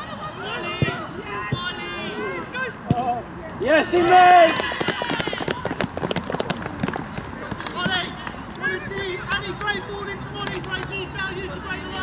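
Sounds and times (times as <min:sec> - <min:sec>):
people calling out and cheering: 0:00.0 - 0:05.9.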